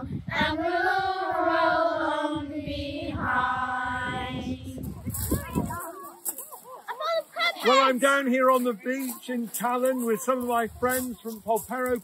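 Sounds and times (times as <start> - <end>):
children's choir singing: 0.3 - 4.8
high children's voices: 3.6 - 8.2, 8.8 - 11.5.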